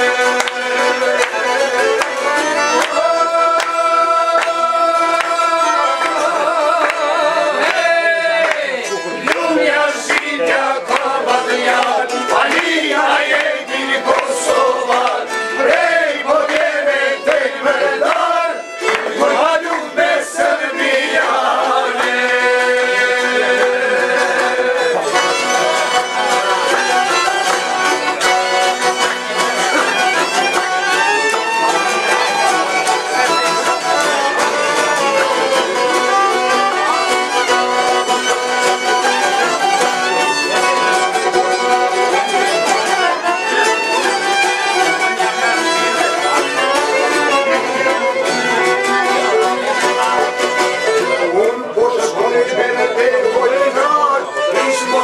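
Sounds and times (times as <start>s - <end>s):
accordion: 0.0s - 55.0s
bowed violin melody: 0.0s - 55.0s
strummed lutes: 0.0s - 55.0s.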